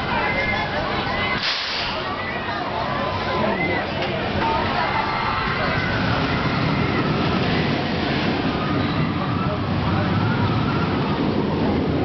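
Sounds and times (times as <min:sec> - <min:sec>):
crowd voices: 0:00.0 - 0:12.0
short hissing burst: 0:01.4 - 0:02.0.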